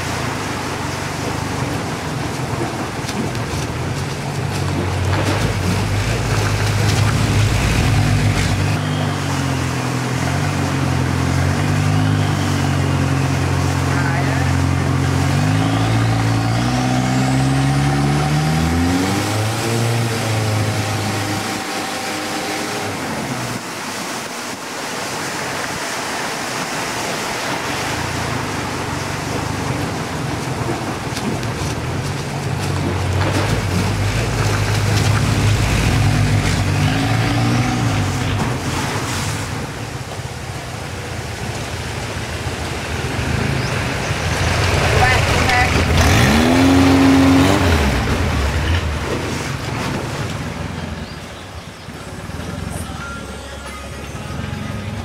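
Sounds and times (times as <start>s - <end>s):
boat engine humming: 0.0s - 55.0s
water washing: 0.0s - 55.0s.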